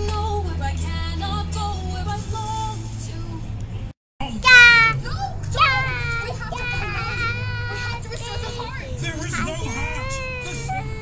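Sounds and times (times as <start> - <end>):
child calling out: 4.4 - 5.0.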